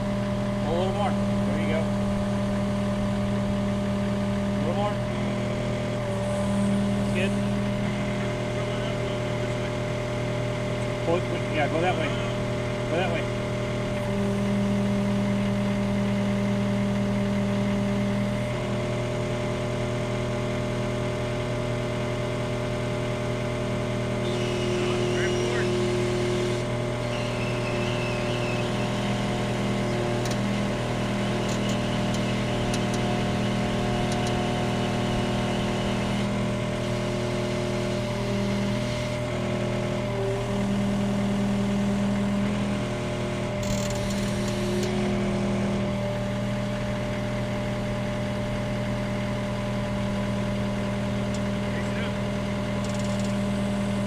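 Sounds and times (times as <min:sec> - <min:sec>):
diesel engine running: 0:00.0 - 0:54.0.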